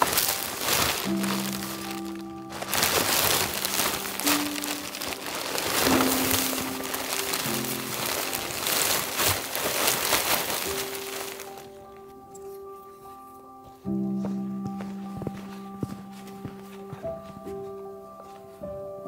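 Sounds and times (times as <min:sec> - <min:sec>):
plastic wrapping crinkling: 0:00.0 - 0:13.2
background music of held notes: 0:00.0 - 0:19.0.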